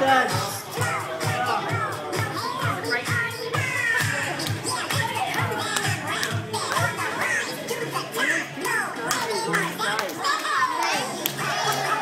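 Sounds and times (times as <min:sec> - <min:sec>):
children calling and squealing: 0:00.0 - 0:12.0
dance music in a hall: 0:00.0 - 0:12.0.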